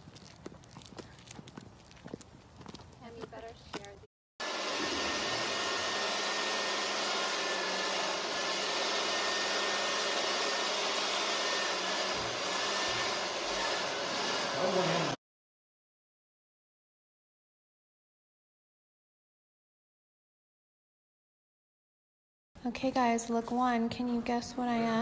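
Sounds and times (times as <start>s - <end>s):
faint footsteps: 0.0s - 4.1s
electric blower whooshing: 4.4s - 15.2s.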